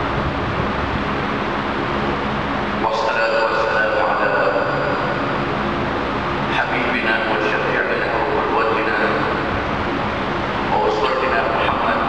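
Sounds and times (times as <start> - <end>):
rushing background noise: 0.0 - 12.0
man speaking over a pa system: 2.8 - 5.3, 6.4 - 9.5, 10.7 - 12.0.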